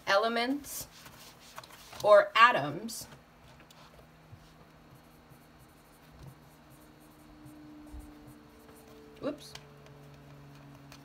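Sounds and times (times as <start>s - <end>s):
marker scratching on whiteboard: 3.7s - 9.1s.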